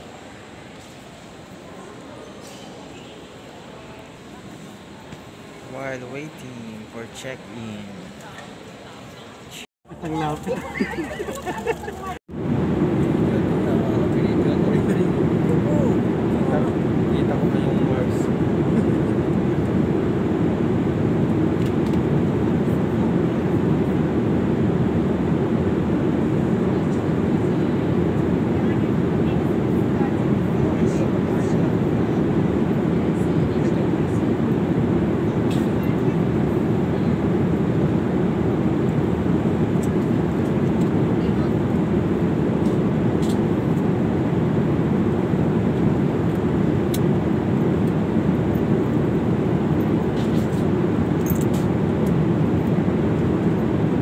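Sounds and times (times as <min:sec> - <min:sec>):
jet airliner cabin rumble: 0:00.0 - 0:54.0.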